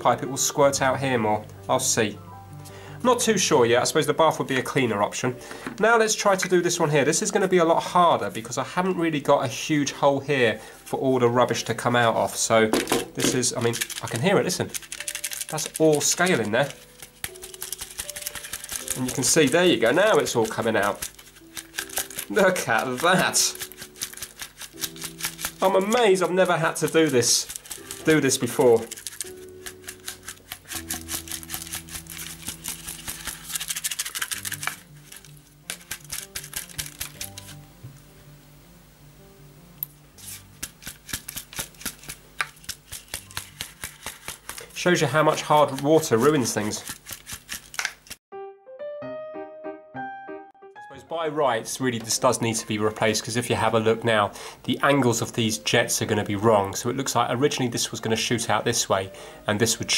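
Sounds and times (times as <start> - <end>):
faint background music: 0.0 - 47.4, 50.8 - 59.9
chips rattling in plastic arm: 12.8 - 37.6, 40.8 - 48.2.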